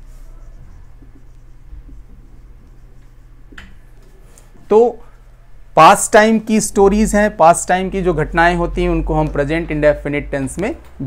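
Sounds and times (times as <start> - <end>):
marker scratching on whiteboard: 0.0 - 4.6
steady low hum: 0.0 - 11.0.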